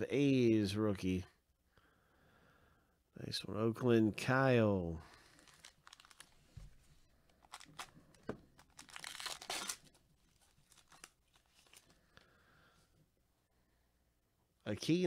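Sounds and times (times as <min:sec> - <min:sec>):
foil wrapper tearing and crinkling: 0:05.1 - 0:06.4, 0:07.4 - 0:08.0, 0:08.6 - 0:11.9.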